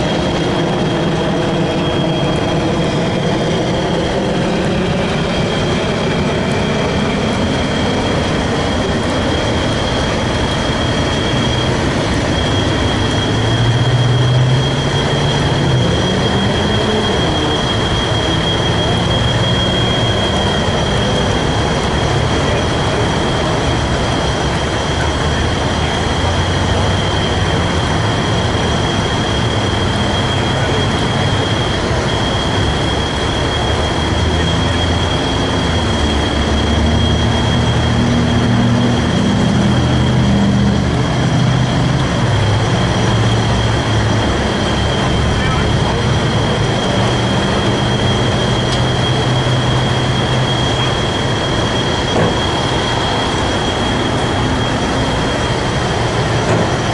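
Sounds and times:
diesel engine running under load: 0.0s - 56.9s
steady high-pitched whine: 0.0s - 56.9s.

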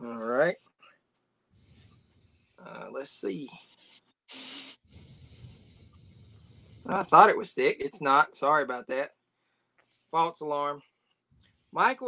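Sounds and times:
breathy exhale through nose: 4.3s - 7.1s.

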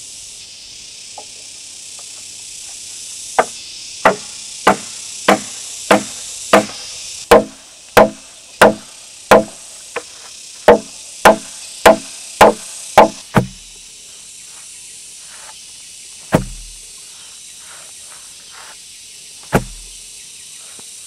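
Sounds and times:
mallet hammering wooden wedges: 3.4s - 9.6s, 10.7s - 13.6s, 16.3s - 16.8s, 19.5s - 19.9s.

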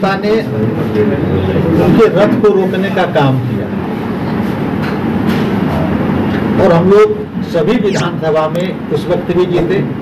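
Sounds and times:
steady background noise: 0.0s - 10.0s
speech: 6.6s - 10.0s.

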